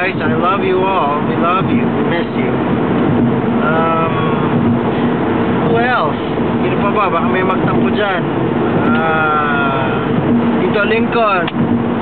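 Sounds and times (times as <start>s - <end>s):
car cabin road and engine drone: 0.0s - 12.0s.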